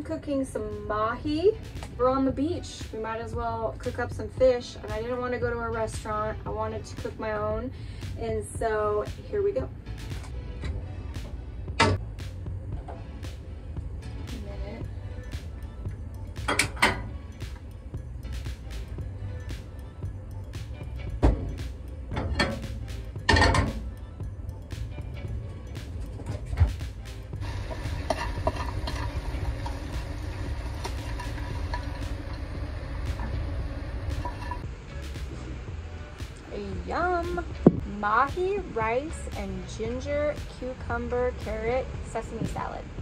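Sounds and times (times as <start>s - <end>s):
background music: 0.0s - 43.0s.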